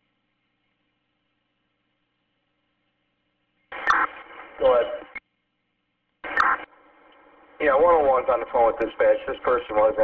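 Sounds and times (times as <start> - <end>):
radio click: 3.7 - 5.2, 6.2 - 7.4
radio static hiss: 3.7 - 5.2, 6.2 - 10.0
unclear radio voice: 3.8 - 5.1.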